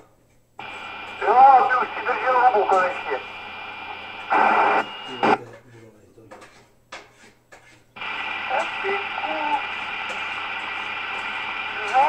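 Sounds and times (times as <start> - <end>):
radio click: 0.6 - 5.4, 8.0 - 12.0
radio static burst: 0.6 - 5.4, 8.0 - 12.0.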